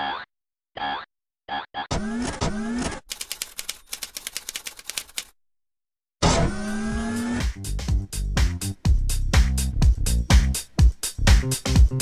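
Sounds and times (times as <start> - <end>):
typewriter-like clicks: 2.8 - 5.3.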